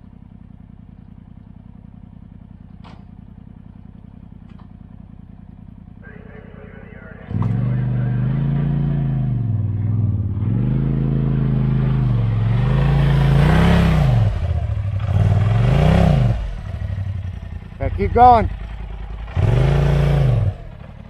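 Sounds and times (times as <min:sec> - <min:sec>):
off-road vehicle engine revving: 0:01.0 - 0:21.0.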